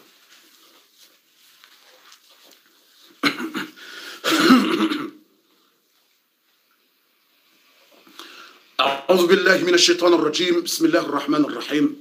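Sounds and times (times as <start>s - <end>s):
man clearing his throat: 3.2s - 5.3s.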